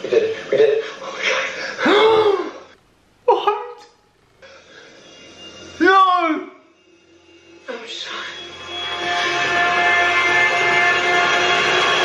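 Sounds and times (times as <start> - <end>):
tense sustained drone chord: 4.4 - 5.8, 6.4 - 12.0.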